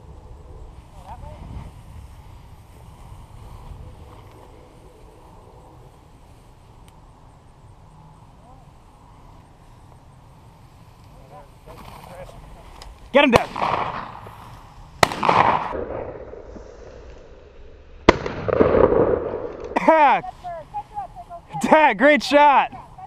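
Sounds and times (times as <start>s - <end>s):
distant voices: 0.0s - 16.2s
wind buffeting microphone: 0.0s - 16.4s.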